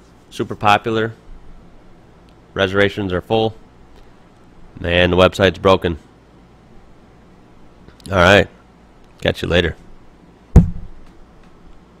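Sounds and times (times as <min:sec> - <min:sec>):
sharp knock: 0:10.6 - 0:11.0.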